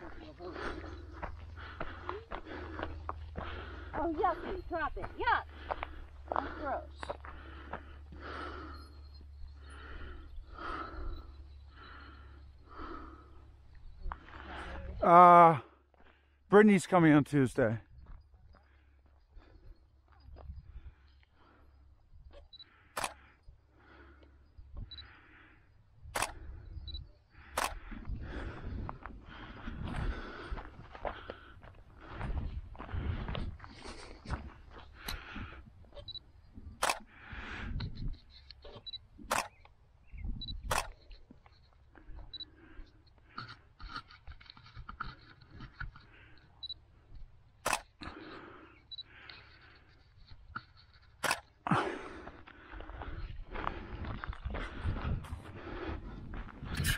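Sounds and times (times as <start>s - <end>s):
sharp camera clicks: 22.5s - 23.2s, 26.1s - 26.6s, 27.5s - 27.9s, 36.8s - 37.2s, 38.2s - 39.8s, 40.4s - 41.2s, 47.6s - 48.1s, 50.6s - 51.6s.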